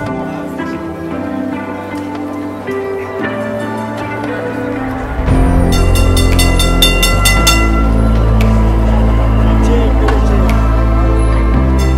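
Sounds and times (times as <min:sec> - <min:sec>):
background music: 0:00.0 - 0:11.9
tram bell ringing rapidly: 0:05.0 - 0:08.4, 0:11.6 - 0:11.9.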